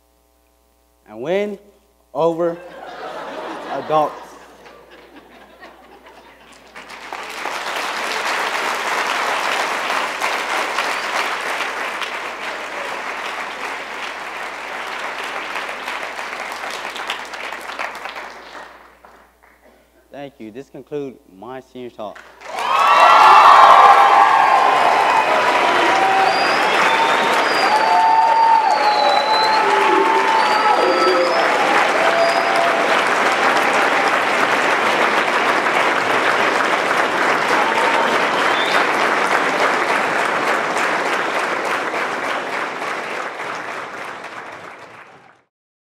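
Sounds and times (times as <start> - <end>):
audience clapping: 2.8 - 19.8, 22.1 - 45.5
cheers and whoops: 22.4 - 34.3, 37.4 - 39.0.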